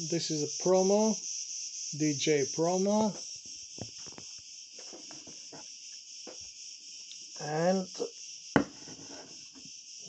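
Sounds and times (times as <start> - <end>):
high-pitched background whine: 0.0 - 5.6.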